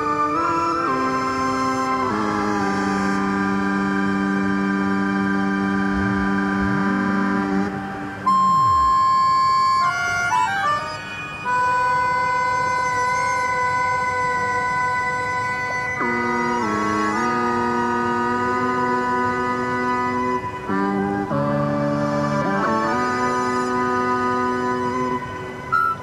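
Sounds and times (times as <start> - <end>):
synthesizer drone chords: 2.1 - 10.0
loud high held tone: 4.8 - 10.2.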